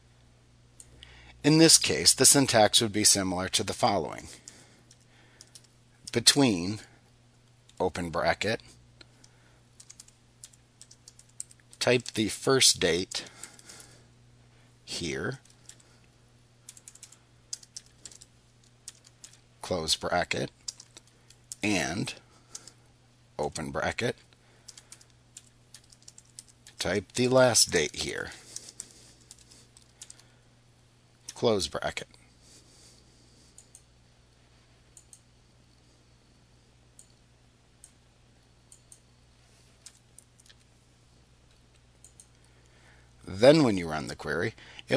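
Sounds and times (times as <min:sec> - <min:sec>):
low steady hum: 0:00.0 - 0:44.9
keyboard typing: 0:04.4 - 0:05.7, 0:09.8 - 0:12.2, 0:15.4 - 0:15.9, 0:16.7 - 0:19.4, 0:20.6 - 0:21.7, 0:24.7 - 0:30.2
computer mouse clicks: 0:04.4 - 0:06.2, 0:09.0 - 0:12.2, 0:16.7 - 0:19.4, 0:20.6 - 0:21.6, 0:24.7 - 0:27.2, 0:33.5 - 0:33.9, 0:34.9 - 0:35.3, 0:38.7 - 0:39.0, 0:41.5 - 0:42.5.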